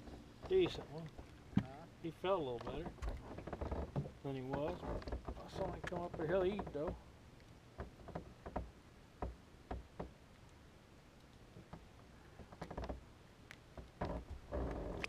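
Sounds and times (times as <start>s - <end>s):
knocks and taps on boat deck: 3.9s - 7.0s, 7.8s - 10.1s.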